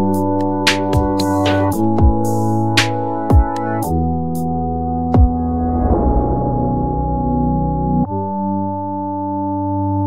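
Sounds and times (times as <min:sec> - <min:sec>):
sustained synthesizer chord: 0:01.3 - 0:10.0.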